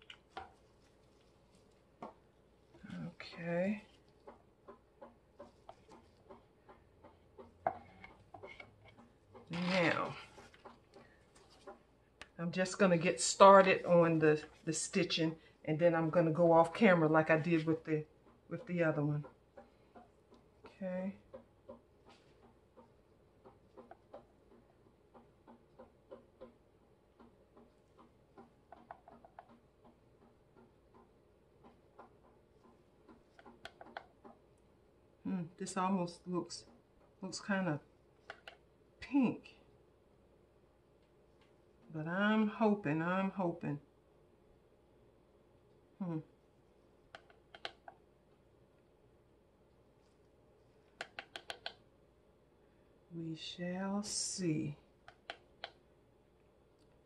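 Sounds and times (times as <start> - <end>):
paintbrush tapping plastic cup: 0.0 - 2.2, 3.2 - 12.3, 50.9 - 51.8
paintbrush ticking and tapping: 0.0 - 34.8, 36.2 - 39.2, 46.9 - 48.1, 49.7 - 51.9, 54.9 - 55.9.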